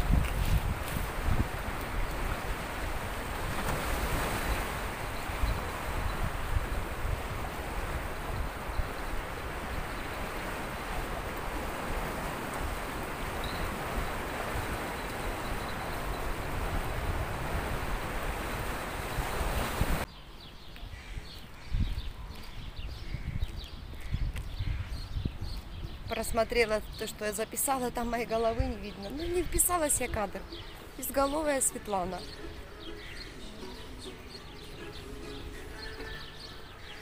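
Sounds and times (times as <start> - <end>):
sea waves: 0.0 - 20.0, 26.5 - 37.0
wind buffeting microphone: 0.0 - 20.1, 20.7 - 27.2.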